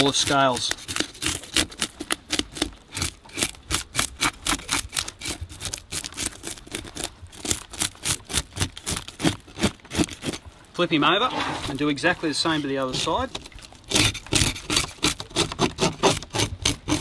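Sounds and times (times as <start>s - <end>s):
fish scaler scraping scales: 0.0s - 17.0s.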